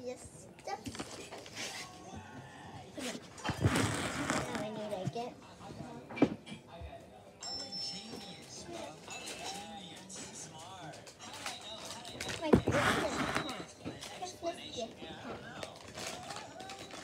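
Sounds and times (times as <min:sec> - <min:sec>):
plastic snack bag rustling: 0:09.1 - 0:17.0.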